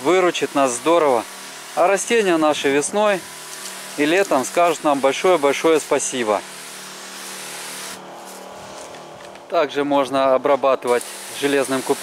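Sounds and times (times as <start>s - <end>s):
spray hissing from nozzle: 0.0s - 8.9s, 10.9s - 12.0s
motor hum: 0.0s - 12.0s.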